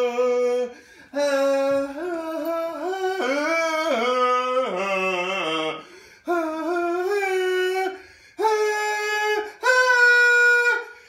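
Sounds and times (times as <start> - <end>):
man singing high held notes: 0.0 - 11.0
breaths between notes: 5.8 - 6.3, 8.0 - 8.4.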